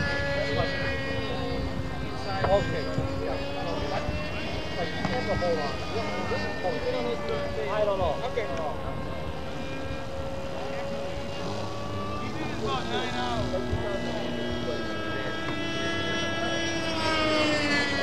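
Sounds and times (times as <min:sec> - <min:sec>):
model airplane engines whining: 0:00.0 - 0:18.0.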